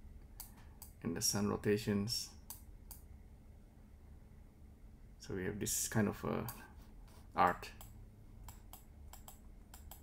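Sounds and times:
computer clicks: 0:07.8 - 0:10.0.

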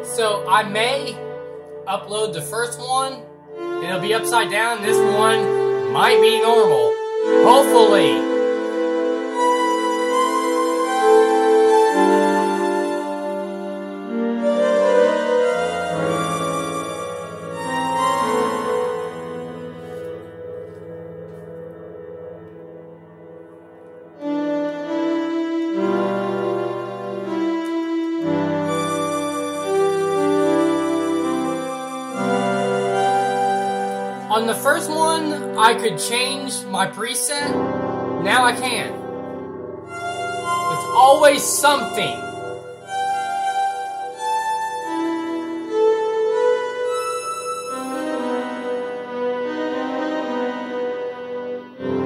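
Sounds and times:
electronic keyboard sustained chord: 0:00.0 - 0:52.0.

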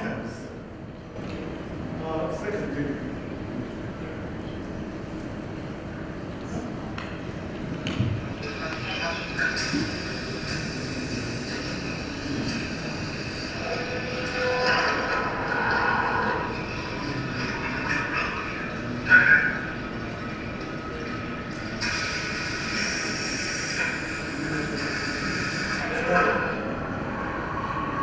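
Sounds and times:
machine running with whining tones: 0:00.0 - 0:28.0
sharp squeal: 0:13.5 - 0:16.7.

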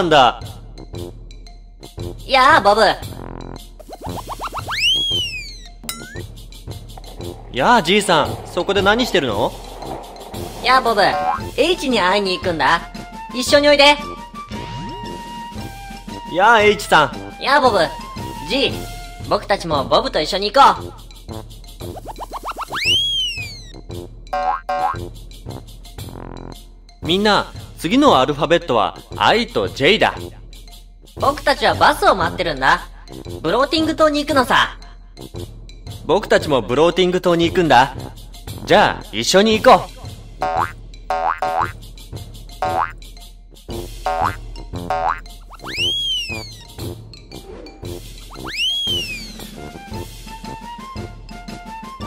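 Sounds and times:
upbeat children's music: 0:00.0 - 0:52.0
cartoon boing sound effects: 0:03.9 - 0:06.3, 0:24.4 - 0:25.0, 0:40.4 - 0:41.8, 0:42.6 - 0:43.0, 0:44.1 - 0:46.6
descending whistle jump effect: 0:04.0 - 0:06.2, 0:22.4 - 0:23.7, 0:45.5 - 0:46.7, 0:48.3 - 0:49.6
short bright squeaks: 0:45.6 - 0:46.7, 0:48.4 - 0:49.3.

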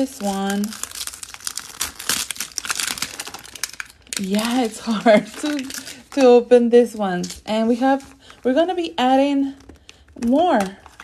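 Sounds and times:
plastic wrap crinkling: 0:00.0 - 0:11.0.

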